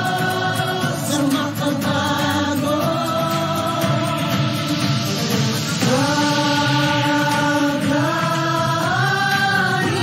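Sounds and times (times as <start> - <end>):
singers holding long note: 0.0 - 10.0.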